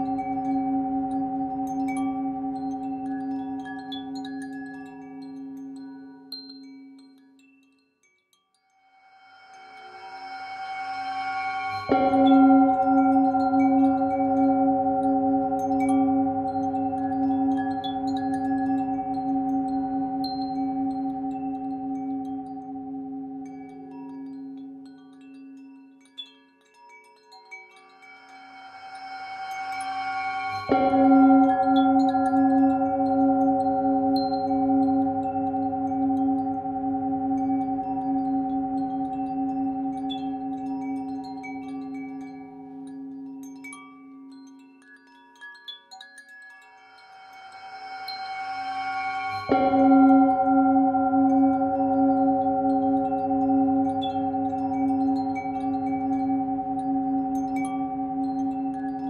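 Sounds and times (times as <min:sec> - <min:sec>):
singing bowl ringing: 0:00.0 - 0:07.0, 0:09.0 - 0:25.6, 0:27.7 - 0:44.9, 0:45.9 - 0:59.0
faint wind chimes tinkling: 0:00.0 - 0:59.0.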